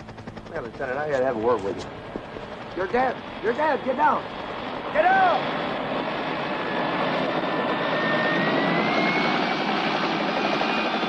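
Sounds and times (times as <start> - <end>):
aircraft engine drone with whine: 0.0 - 11.0.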